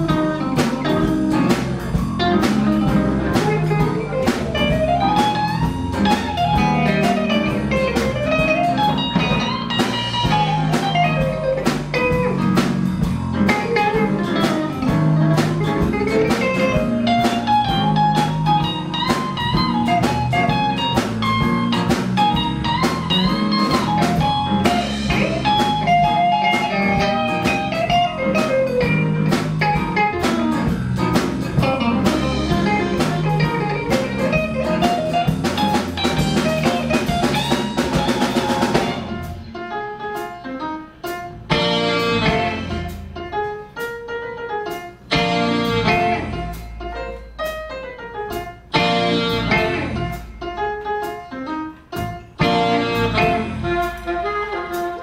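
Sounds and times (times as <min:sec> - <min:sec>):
drum kit: 0:00.0 - 0:55.0
electric bass: 0:00.0 - 0:55.0
electric guitar: 0:00.0 - 0:55.0
melodic lead line: 0:00.0 - 0:55.0
piano: 0:00.0 - 0:55.0.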